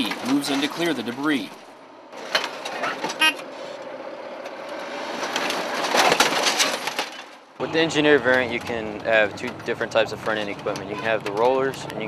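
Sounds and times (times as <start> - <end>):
metal scraping and crunching: 4.5 - 11.9
diesel engine running: 7.6 - 12.0.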